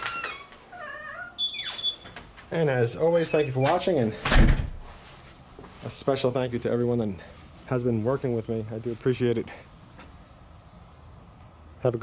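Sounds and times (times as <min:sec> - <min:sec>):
door hinges squeaking: 0:00.0 - 0:02.3, 0:03.2 - 0:04.6.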